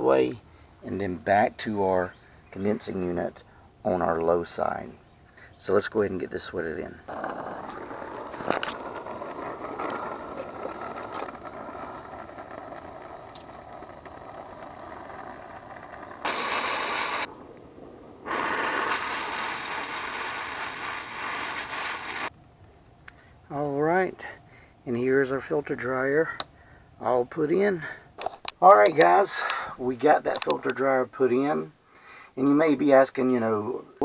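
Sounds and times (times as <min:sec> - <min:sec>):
torch flame hissing: 0:07.1 - 0:22.3.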